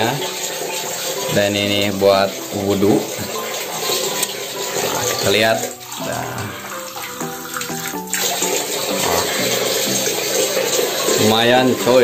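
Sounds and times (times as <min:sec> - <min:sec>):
background music: 0:00.0 - 0:12.0
water pouring into a glass: 0:00.0 - 0:12.0.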